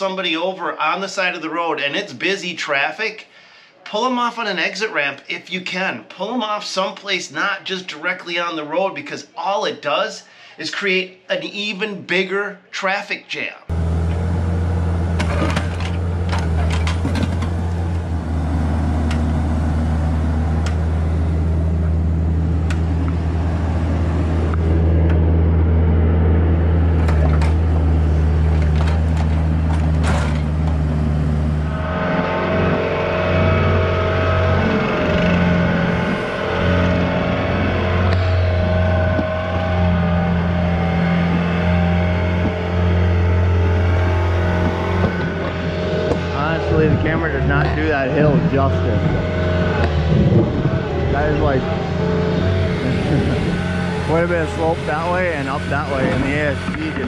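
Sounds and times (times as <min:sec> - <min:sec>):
excavator engine hum: 0:13.7 - 0:57.0
higher steady tones: 0:30.5 - 0:57.0.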